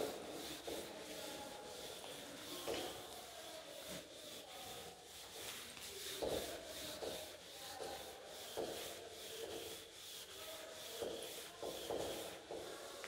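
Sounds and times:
duster rubbing on blackboard: 0.0 - 13.0.

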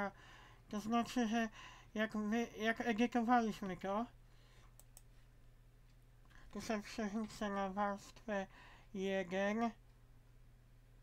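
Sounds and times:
low steady hum: 0.0 - 11.0
computer mouse clicks: 4.7 - 5.2.

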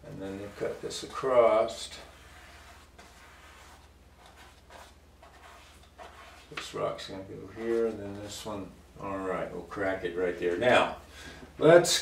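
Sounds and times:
low electrical hum: 0.0 - 12.0
brush strokes on canvas: 0.1 - 8.5.

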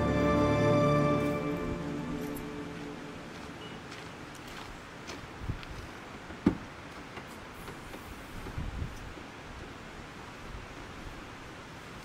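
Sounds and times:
soft outdoor hiss: 0.0 - 12.0.

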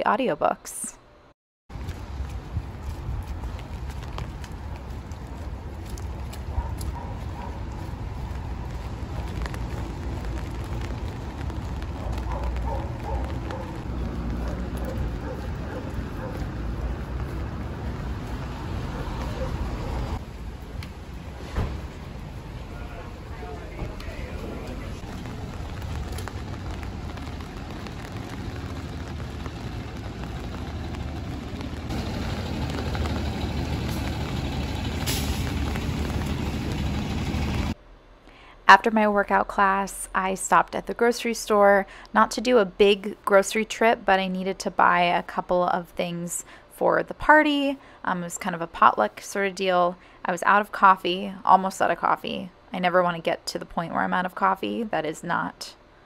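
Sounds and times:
low rumble: 1.7 - 37.8
rain on an umbrella: 1.7 - 37.8
traffic on a wet street: 1.7 - 37.8.

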